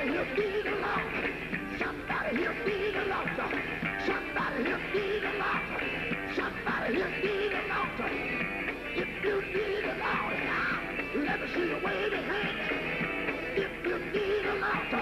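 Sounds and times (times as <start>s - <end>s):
band playing: 0.0s - 15.0s
voices singing and crying out: 0.0s - 15.0s.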